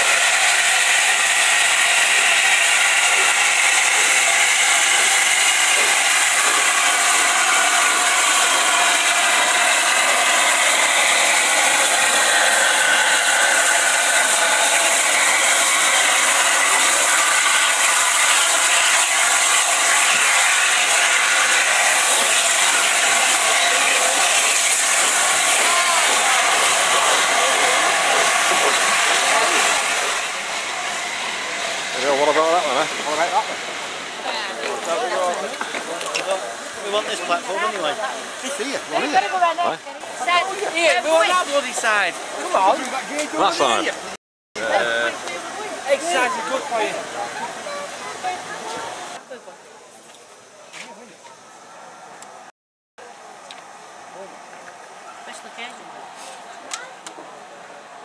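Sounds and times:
steam locomotive hissing: 0.0 - 49.2.

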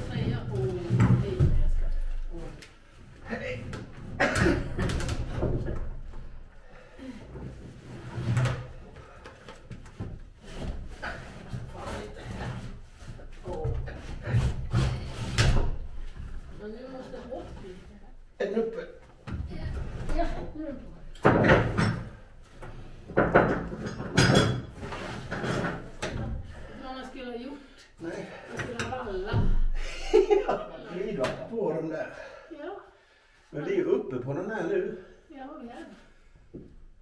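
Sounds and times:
wooden knocks and scrapes: 0.0 - 2.1, 7.4 - 16.6, 21.2 - 26.6.

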